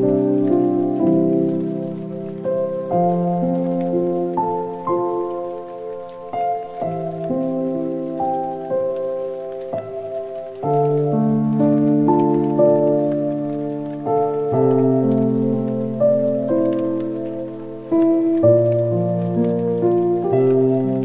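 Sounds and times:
soft instrumental music: 0:00.0 - 0:21.0.

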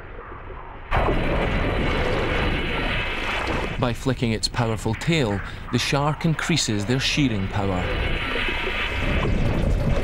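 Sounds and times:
muffled low rumble: 0:00.0 - 0:10.0
water splashing: 0:01.4 - 0:03.8.

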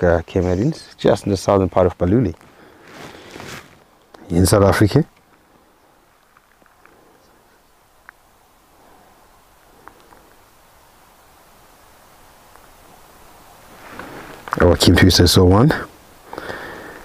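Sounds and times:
faint rustling: 0:00.0 - 0:15.0
grass cropping clicks: 0:05.1 - 0:05.5, 0:06.1 - 0:07.1, 0:09.6 - 0:10.4.

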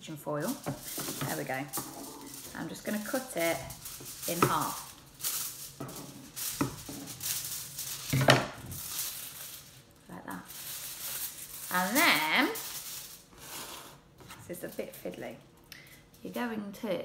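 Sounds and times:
scissors cutting foil: 0:00.4 - 0:15.2
foil crackling and rustling: 0:00.4 - 0:15.4.

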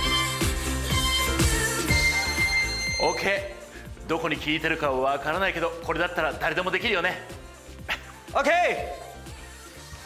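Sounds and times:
electronic dance music: 0:00.0 - 0:10.0
long high timer beep: 0:01.9 - 0:03.6.

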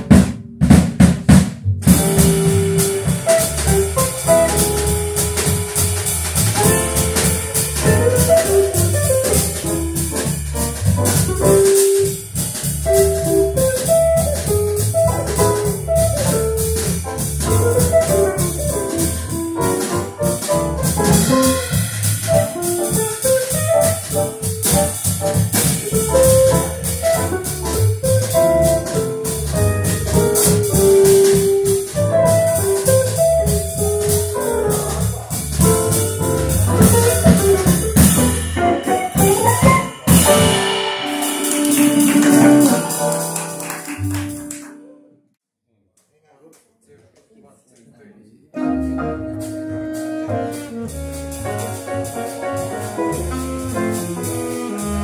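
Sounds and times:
drum kit: 0:00.0 - 0:44.8, 0:48.6 - 0:55.0
jazz quartet playing swing: 0:00.0 - 0:45.0, 0:48.6 - 0:55.0.

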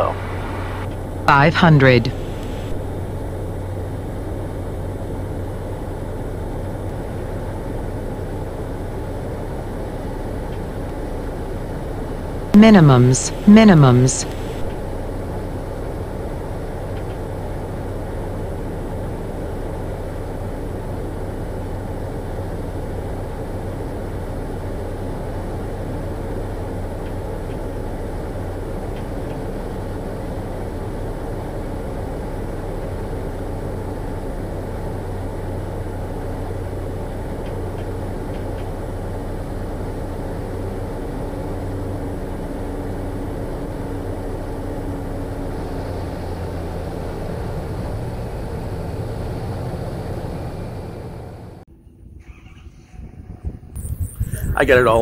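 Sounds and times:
turboprop engine drone: 0:00.0 - 0:12.6, 0:14.2 - 0:51.7.

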